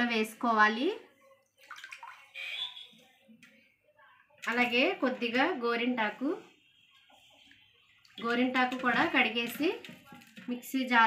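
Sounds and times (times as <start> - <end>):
water splashing in steel bowl: 1.4 - 3.1, 4.4 - 5.6, 6.9 - 11.0.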